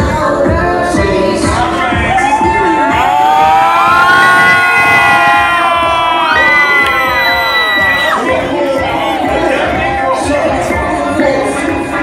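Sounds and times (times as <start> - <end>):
crowd screaming and cheering: 1.4 - 12.0
scattered shouting: 1.9 - 10.6.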